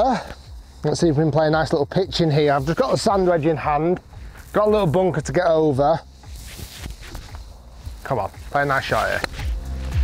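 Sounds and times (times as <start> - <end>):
soft rustles and ticks: 0.2 - 10.0.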